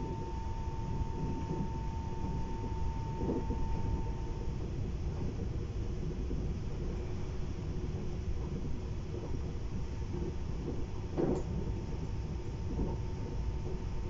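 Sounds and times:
train rumble inside carriage: 0.0 - 14.0.

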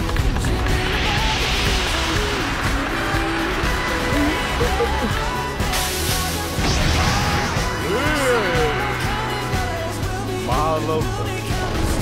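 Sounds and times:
anime soundtrack music: 0.0 - 12.0
rushing hissing sound effect: 0.6 - 10.2.

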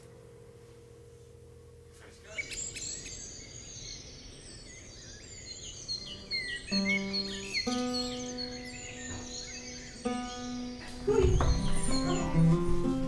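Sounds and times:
songbirds chirping and whistling: 1.8 - 13.0.

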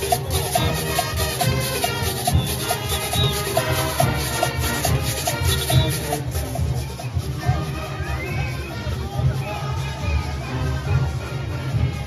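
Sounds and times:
drums and cowbells: 0.0 - 12.0.

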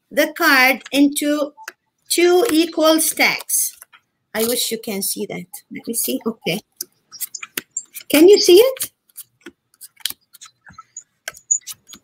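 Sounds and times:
playing cards dealt on table: 8.8 - 10.6.

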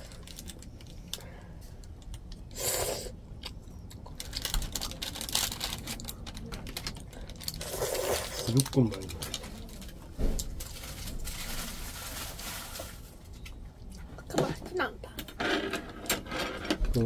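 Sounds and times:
slurping noodles: 7.6 - 8.6.

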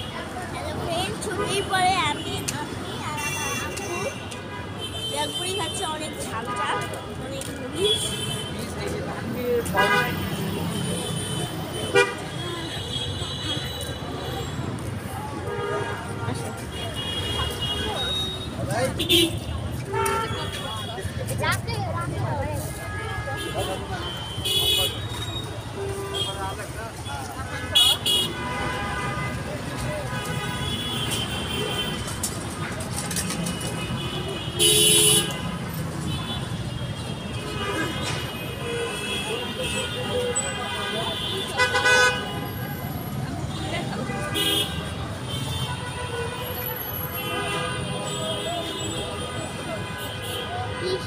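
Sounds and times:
chatter of passers-by: 0.0 - 51.0
street traffic rumble: 0.0 - 51.0
vehicle horns honking: 9.6 - 14.6, 15.4 - 21.1, 22.6 - 51.0.

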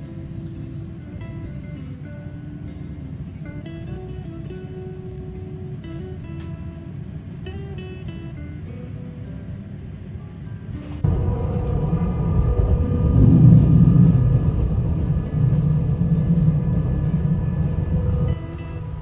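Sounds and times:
train running inside carriage: 0.0 - 3.8, 4.4 - 19.0
background music: 0.0 - 19.0.

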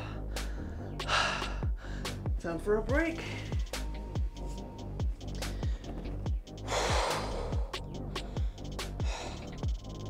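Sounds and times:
man breathing hard: 0.0 - 2.4, 3.2 - 10.0
electronic music with kick drum: 0.0 - 10.0.

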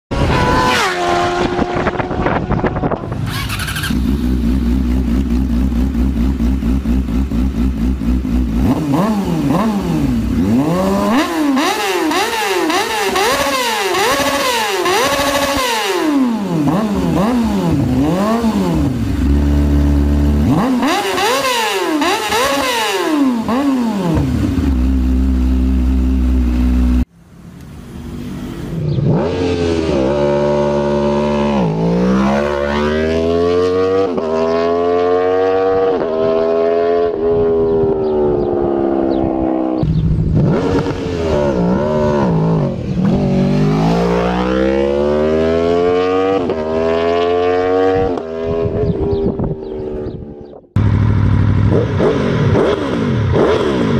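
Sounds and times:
engine revving up: 0.1 - 27.1, 28.3 - 50.2, 50.8 - 53.9
motorcycle engine revving: 0.1 - 27.1, 27.8 - 53.9.

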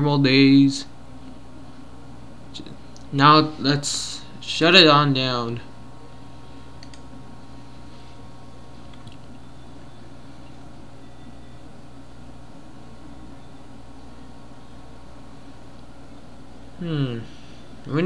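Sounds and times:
computer humming: 0.0 - 18.0.

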